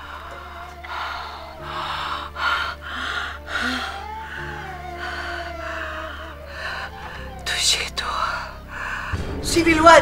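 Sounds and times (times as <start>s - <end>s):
woman gasping breaths: 0.0s - 7.4s, 8.6s - 9.4s
low music drone: 0.0s - 10.0s.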